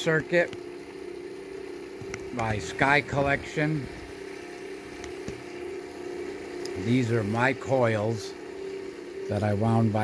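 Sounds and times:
motor humming: 0.0s - 10.0s.

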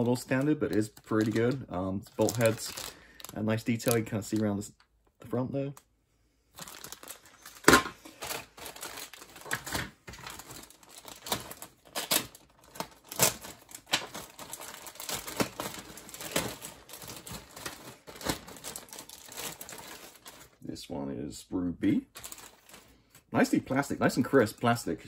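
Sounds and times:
plastic bags crinkling: 0.0s - 4.8s, 6.5s - 20.6s, 22.1s - 23.5s.

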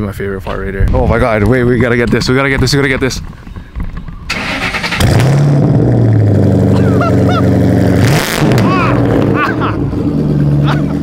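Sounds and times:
car engine idling: 4.2s - 11.0s.

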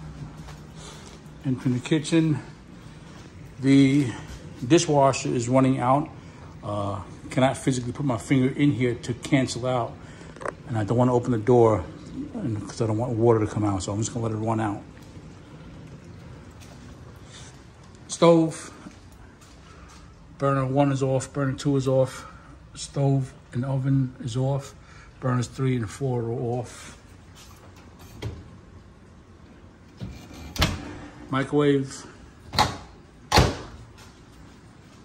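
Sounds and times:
low steady hum: 0.0s - 35.0s.

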